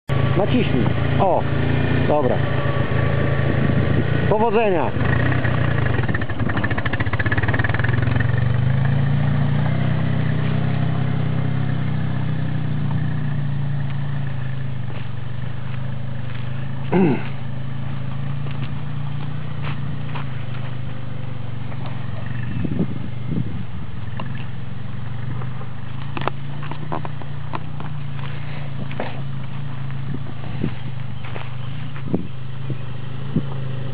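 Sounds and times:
atv engine running: 0.0 - 33.9
person laughing: 16.9 - 17.3.

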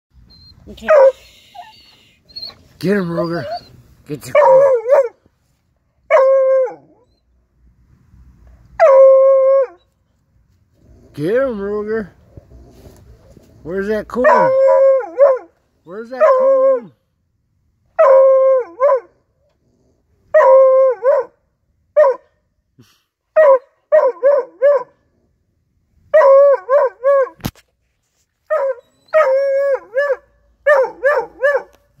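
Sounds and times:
puppy baying: 0.3 - 5.2, 14.2 - 15.5, 28.5 - 31.8.

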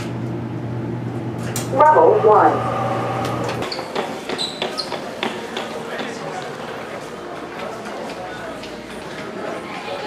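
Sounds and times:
murmur of distant voices: 4.0 - 10.0.

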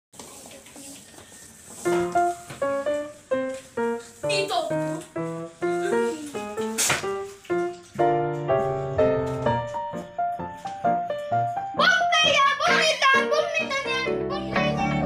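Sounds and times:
piano melody: 1.7 - 15.0.

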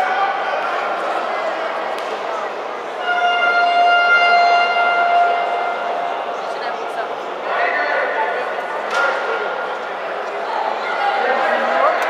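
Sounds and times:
murmur of hall crowd: 0.0 - 12.0.

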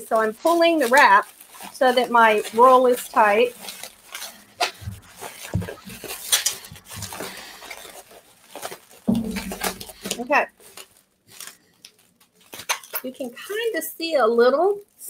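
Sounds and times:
bubble wrap crinkling and crackling: 0.0 - 15.0.

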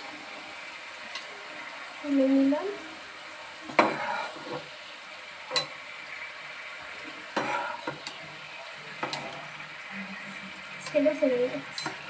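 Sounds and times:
vegetables sizzling in frying pan: 0.0 - 12.0
steel spatula scraping pan: 3.8 - 4.7, 7.4 - 8.2.

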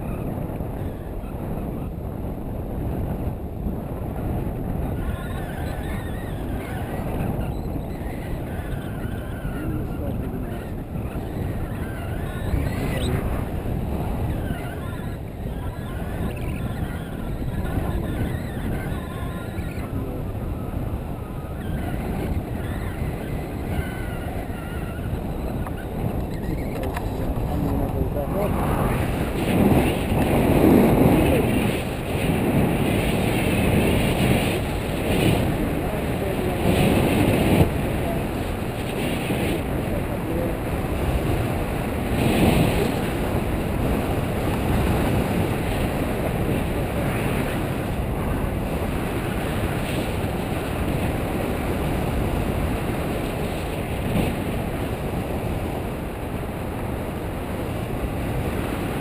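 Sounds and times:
wind rushing over microphone: 0.0 - 59.0.

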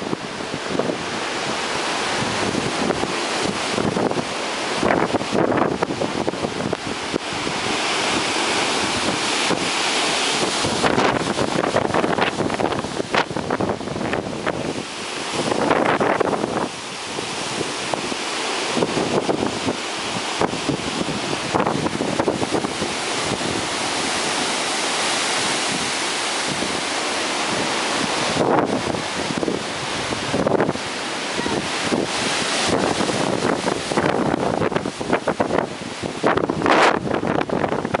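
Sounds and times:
strong wind rushing through trees: 0.0 - 38.0
wind buffeting microphone: 0.0 - 38.0.

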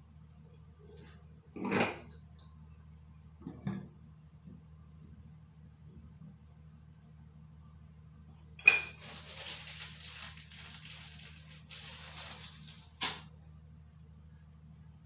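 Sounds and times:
popcorn kernels sizzling in oil: 8.6 - 13.3.

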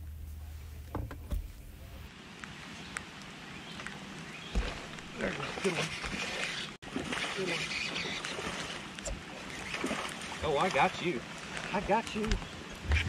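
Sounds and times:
light rain hiss: 0.0 - 5.6.

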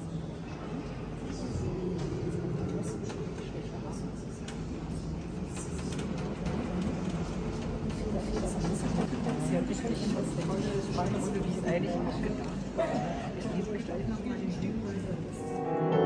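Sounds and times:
murmur of voices in a church: 0.0 - 16.0.

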